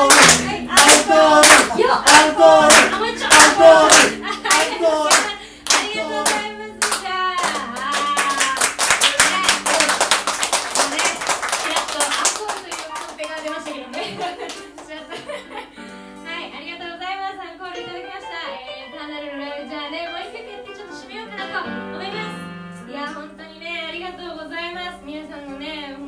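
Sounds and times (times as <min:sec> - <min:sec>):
audience clapping: 0:00.0 - 0:15.0.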